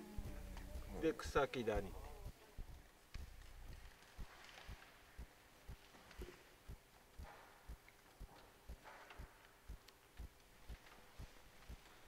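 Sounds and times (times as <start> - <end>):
soft low thuds beat: 0.0 - 12.0.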